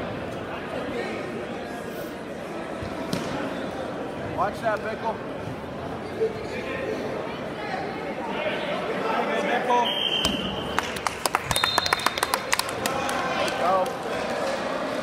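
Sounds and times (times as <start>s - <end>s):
short high whistle: 9.8s - 10.6s
hand clapping: 10.7s - 14.0s.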